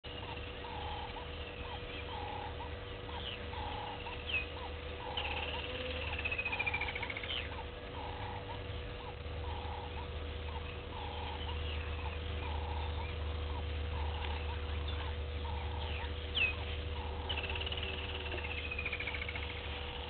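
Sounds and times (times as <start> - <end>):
faint steady hum: 0.0 - 20.0
high whistled calls: 0.2 - 20.0.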